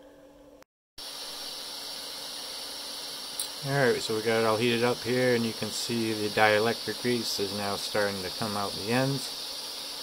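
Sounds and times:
butane flame hissing: 0:01.0 - 0:10.0.

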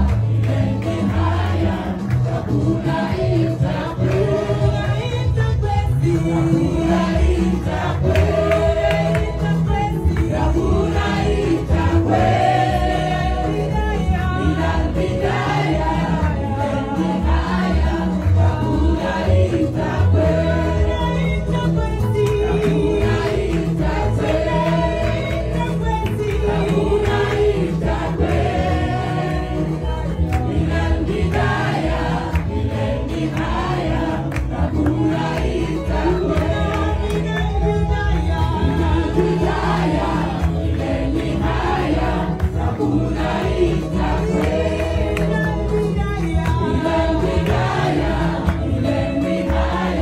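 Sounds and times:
amplified backing music: 0:00.0 - 0:50.0
women's choir singing gospel: 0:00.0 - 0:50.0.

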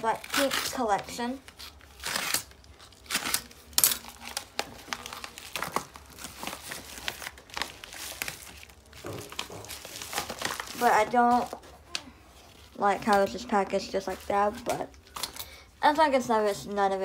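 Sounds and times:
paper envelope crinkling: 0:00.0 - 0:15.2.

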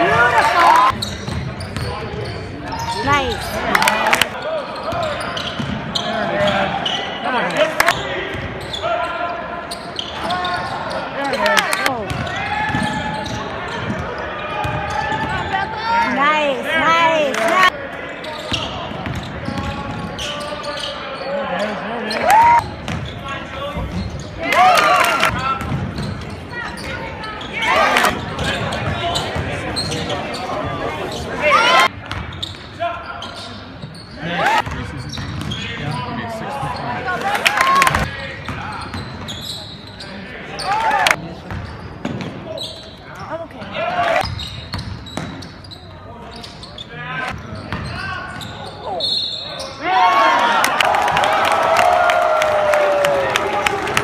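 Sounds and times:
voices and shouts: 0:00.0 - 0:01.0, 0:14.4 - 0:17.9, 0:21.1 - 0:22.7, 0:26.5 - 0:31.9, 0:40.2 - 0:41.2, 0:46.9 - 0:54.0.

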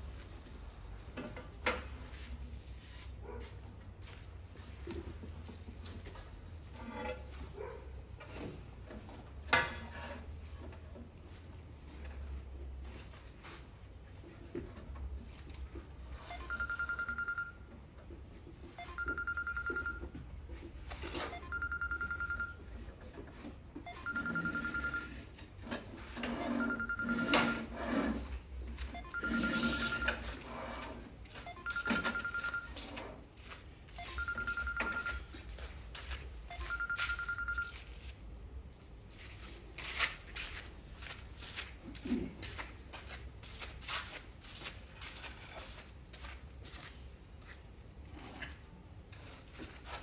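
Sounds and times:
knocks and scrapes of tile work: 0:00.0 - 0:17.1, 0:17.7 - 0:36.3, 0:39.2 - 0:46.9, 0:47.5 - 0:50.0
telephone ringing: 0:16.1 - 0:17.8, 0:18.7 - 0:27.8, 0:28.8 - 0:33.1, 0:33.9 - 0:35.7, 0:36.5 - 0:38.0.

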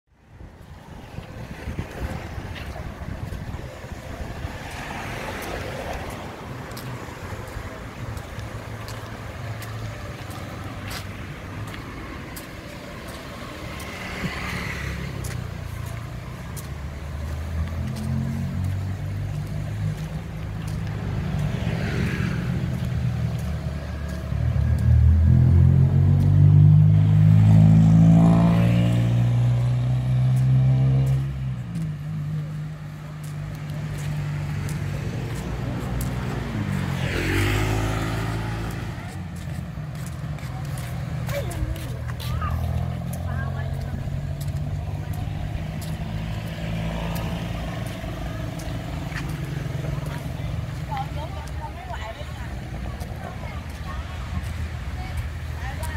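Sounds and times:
vehicles driving past: 0:00.1 - 0:55.9.

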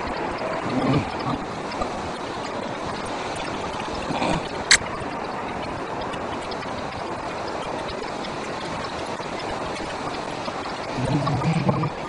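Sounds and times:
flowing river water: 0:00.0 - 0:12.0.

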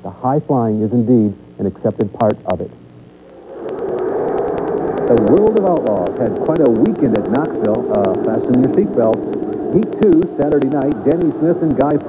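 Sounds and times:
faint regular clicking: 0:02.9 - 0:12.0.

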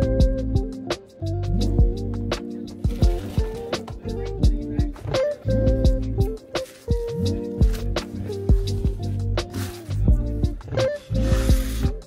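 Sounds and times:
held chords: 0:00.0 - 0:12.0.

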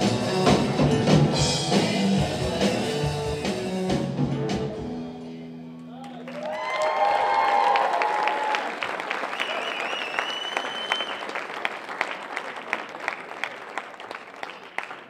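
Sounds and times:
audience applauding and cheering: 0:05.9 - 0:15.0
high shrill whistle: 0:09.3 - 0:11.4.

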